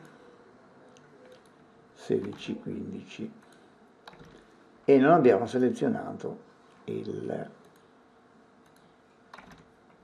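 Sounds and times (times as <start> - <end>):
faint computer mouse clicks: 8.6 - 9.6.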